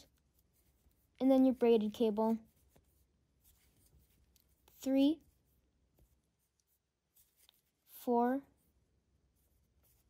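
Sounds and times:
person counting: 0.0s - 10.0s.

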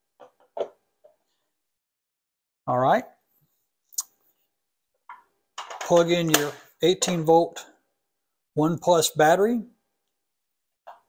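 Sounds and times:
man talking: 2.7s - 3.1s, 5.8s - 7.7s, 8.6s - 9.8s.

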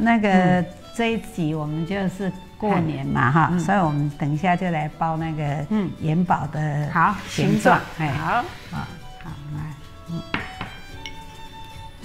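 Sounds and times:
soft background music: 0.0s - 12.0s
spoon clinking ceramic bowl: 10.2s - 11.4s.

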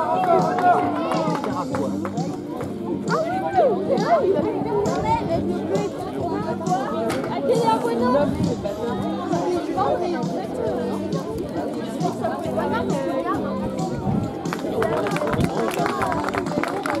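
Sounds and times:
background music: 0.0s - 17.0s
spectators chattering: 0.0s - 17.0s.

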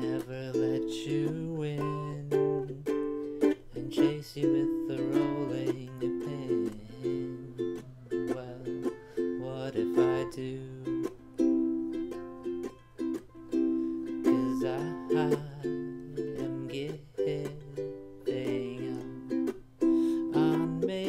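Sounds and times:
ukulele strumming chords: 0.0s - 21.0s.

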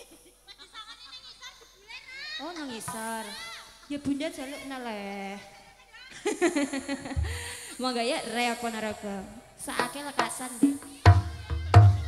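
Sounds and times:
amplified speech: 0.0s - 12.0s.

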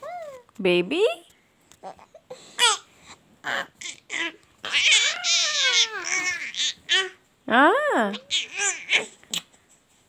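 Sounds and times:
infant squealing: 3.4s - 7.2s, 8.2s - 9.2s.

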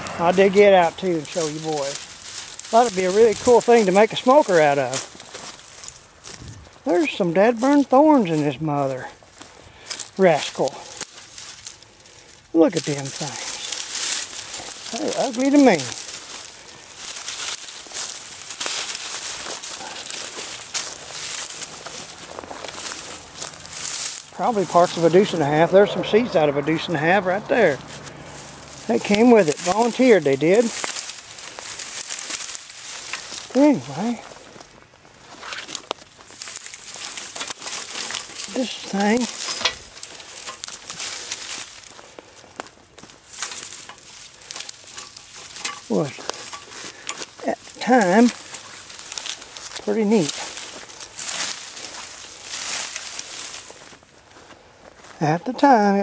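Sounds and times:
footsteps through dry brush: 0.0s - 56.0s
twigs and leaves crackling: 0.0s - 56.0s.

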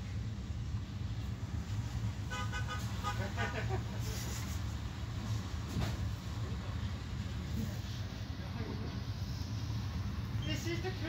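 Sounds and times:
train running low rumble: 0.0s - 11.0s
voices: 6.2s - 11.0s.

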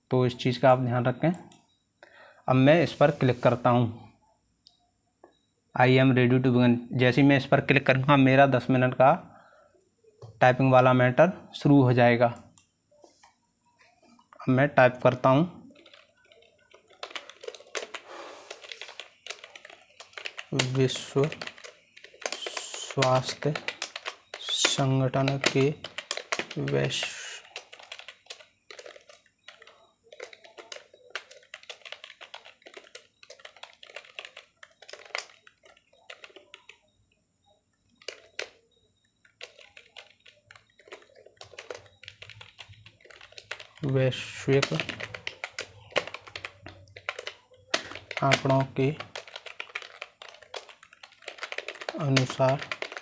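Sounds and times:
computer keyboard typing: 14.8s - 53.0s.

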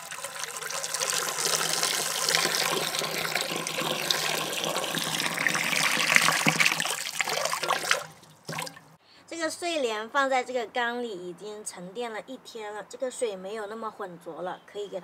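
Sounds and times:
water pouring into a jar: 0.0s - 8.8s.

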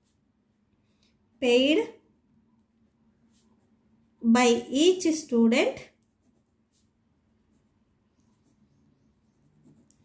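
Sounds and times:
pen scratching on paper: 6.1s - 10.0s.

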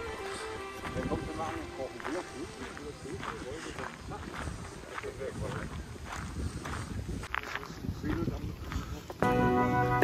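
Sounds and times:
footsteps on gravel: 0.0s - 9.2s.

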